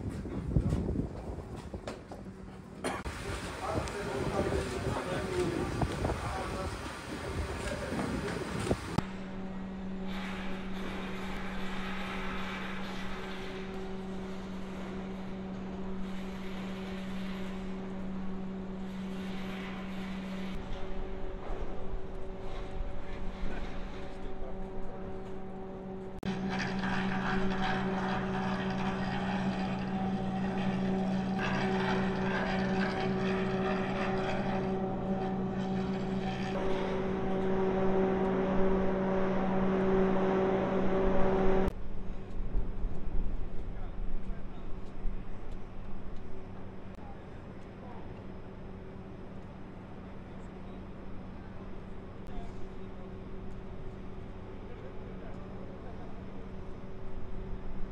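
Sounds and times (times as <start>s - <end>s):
industrial machinery drone: 0.0s - 57.9s.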